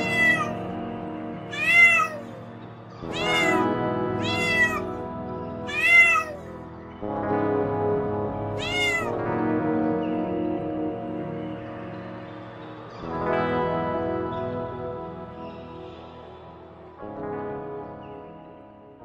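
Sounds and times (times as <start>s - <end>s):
cat meowing: 0.0s - 0.7s, 1.5s - 2.4s, 3.0s - 5.0s, 5.7s - 6.6s, 8.6s - 9.2s
background music: 0.0s - 19.0s.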